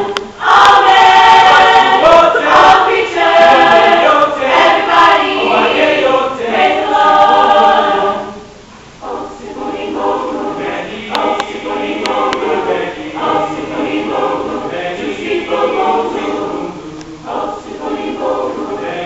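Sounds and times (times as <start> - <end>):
mixed choir singing: 0.0 - 19.0.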